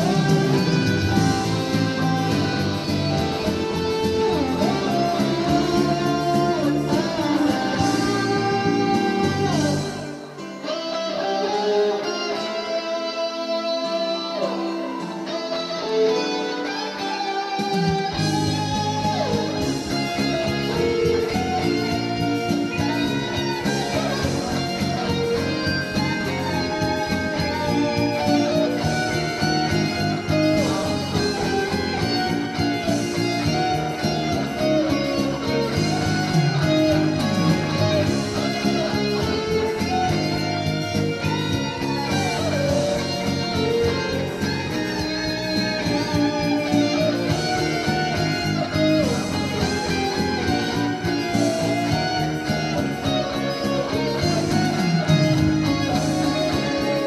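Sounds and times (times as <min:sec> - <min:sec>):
electric guitar melody: 0:00.0 - 0:57.0
musical accompaniment: 0:00.0 - 0:57.0.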